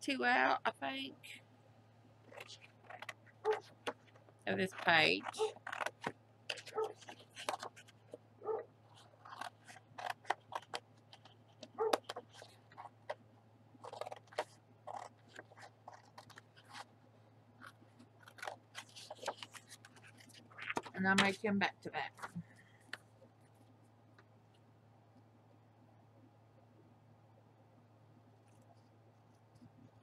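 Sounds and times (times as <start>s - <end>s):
faint low hum: 0.0s - 30.0s
scissors snipping paper: 2.3s - 8.1s, 8.9s - 13.2s, 13.8s - 16.9s, 17.6s - 21.4s.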